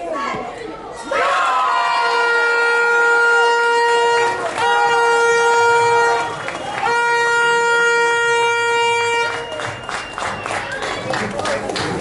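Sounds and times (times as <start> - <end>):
crowd voices: 0.0 - 12.0
air horn blasts: 2.0 - 9.8.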